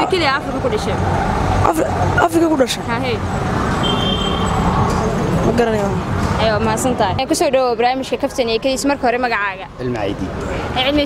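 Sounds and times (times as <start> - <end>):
street traffic noise: 0.0 - 11.0
voices: 0.0 - 11.0.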